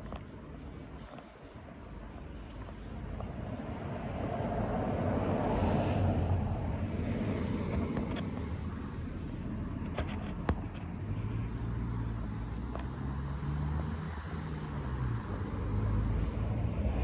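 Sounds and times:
car passing: 0.0s - 17.0s.

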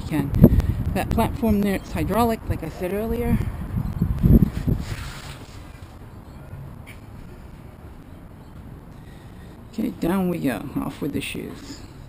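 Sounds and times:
rustle against canvas: 4.5s - 5.9s.

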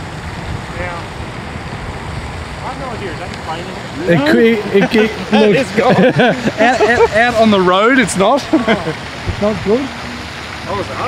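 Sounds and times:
wind noise on microphone: 0.0s - 5.2s, 9.1s - 10.4s
faint voices: 2.5s - 11.0s.

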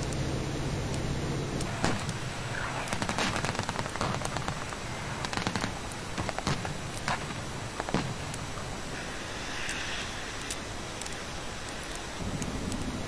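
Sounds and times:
low steady rumble: 0.0s - 10.9s, 12.2s - 13.0s
sharp cracks in bursts: 1.6s - 8.6s.

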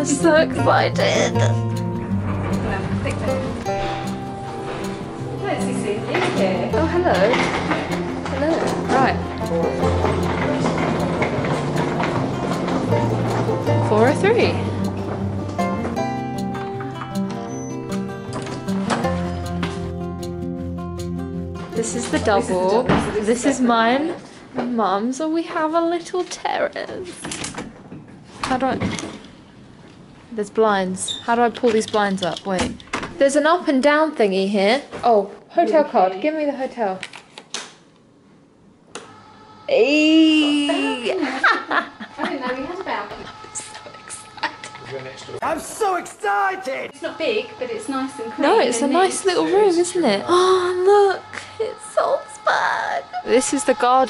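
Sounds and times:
soft background music: 0.0s - 24.2s, 39.1s - 54.0s
rhythmic clicking on tiled floor: 2.0s - 19.8s.

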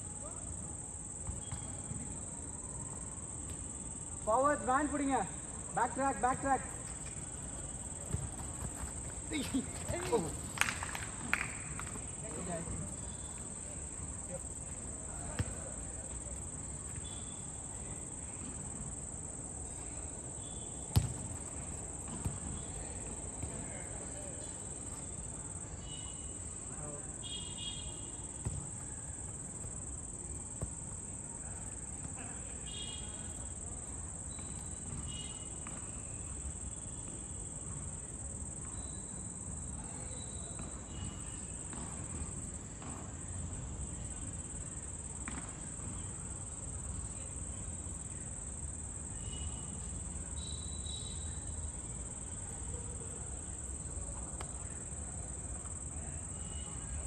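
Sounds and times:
crickets trilling: 0.1s - 42.9s, 43.6s - 57.0s
ball kicks: 1.2s - 1.8s, 7.8s - 12.0s, 15.2s - 15.7s, 20.9s - 22.7s, 28.4s - 28.7s, 45.2s - 46.0s
distant players shouting: 7.8s - 11.6s.

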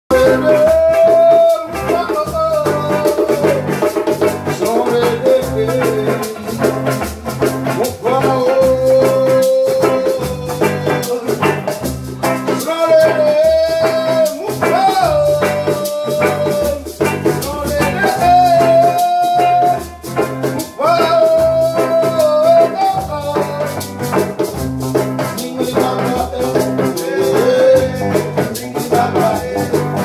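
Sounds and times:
acoustic guitar: 0.1s - 30.0s
djembe drumming: 0.1s - 30.0s
electric guitar: 0.1s - 30.0s.

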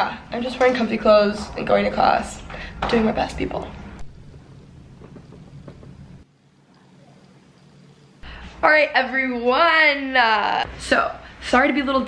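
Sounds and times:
low background rumble: 0.2s - 9.6s.

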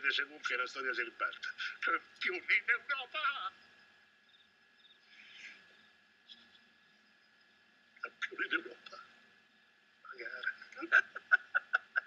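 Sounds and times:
rapid pulsing laugh: 10.4s - 12.0s.

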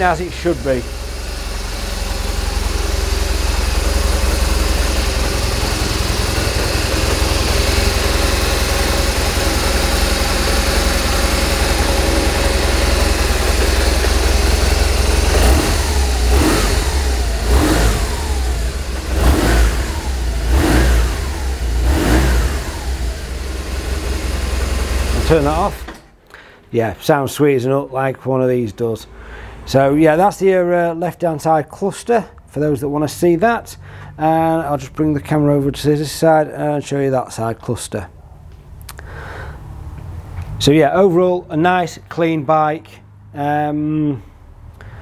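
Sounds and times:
motorcycle engine idling and revving: 0.0s - 26.0s.

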